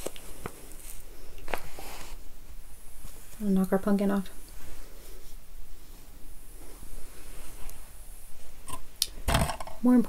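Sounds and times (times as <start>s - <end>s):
woman speaking: 3.4s - 4.4s, 9.8s - 10.0s.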